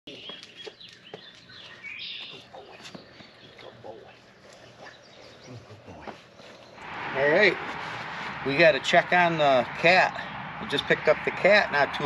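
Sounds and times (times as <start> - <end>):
footsteps on pavement: 0.1 - 6.9
birds chirping: 0.1 - 12.0.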